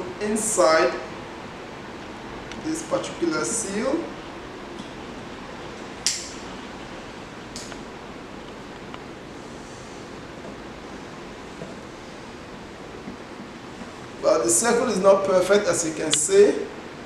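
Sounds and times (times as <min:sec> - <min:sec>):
room hiss: 0:00.0 - 0:17.0.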